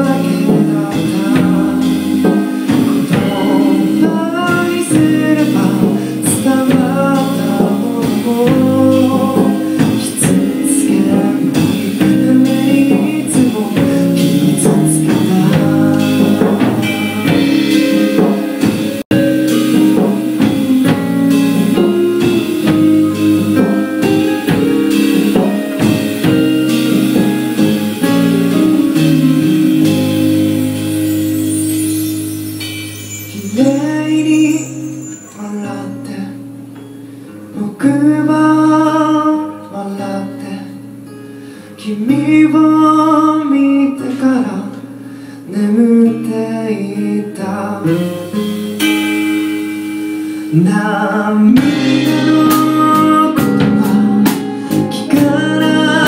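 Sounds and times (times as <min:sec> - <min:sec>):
person singing: 0:00.0 - 0:36.6, 0:37.5 - 0:40.9, 0:41.8 - 0:49.4, 0:50.5 - 0:56.0
drum kit: 0:00.0 - 0:56.0
guitar: 0:00.0 - 0:56.0.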